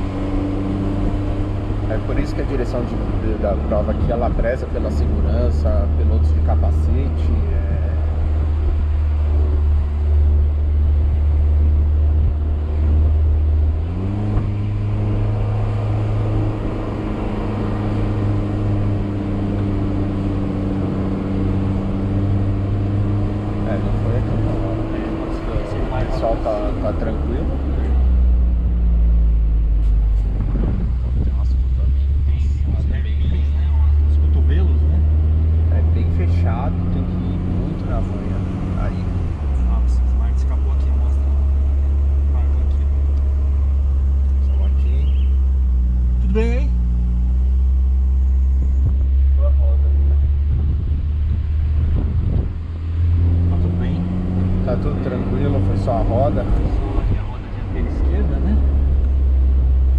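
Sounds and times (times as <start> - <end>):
car engine from inside cabin: 0.0 - 59.9.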